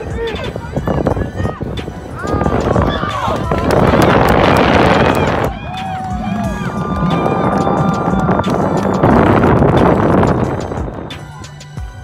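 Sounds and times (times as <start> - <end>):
crowd shouting and cheering: 0.0 - 11.8.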